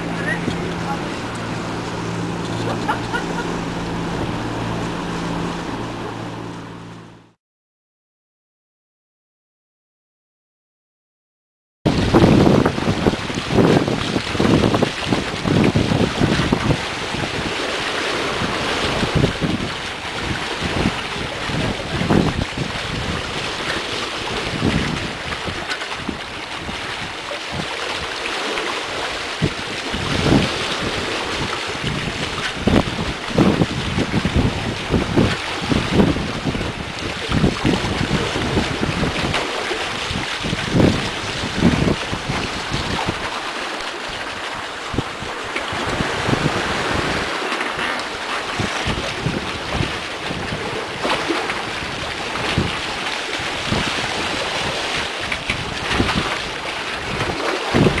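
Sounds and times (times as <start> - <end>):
sea water rushing along hulls: 0.0 - 7.4, 11.9 - 58.0
wind buffeting microphone: 11.9 - 28.2, 28.9 - 58.0.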